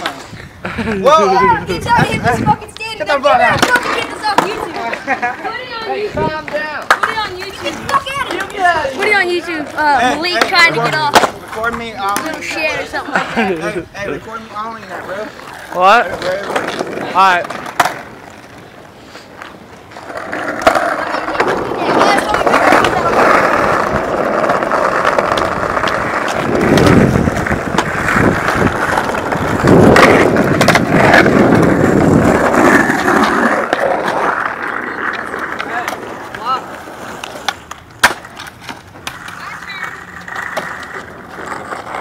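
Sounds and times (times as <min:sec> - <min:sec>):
skateboard wheels rolling on concrete: 0:00.0 - 0:42.0
skateboard clacks: 0:01.4 - 0:13.8, 0:14.7 - 0:42.0.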